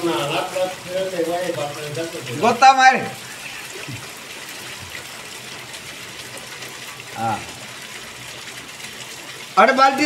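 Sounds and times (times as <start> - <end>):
rain falling on wet ground: 0.0 - 10.0.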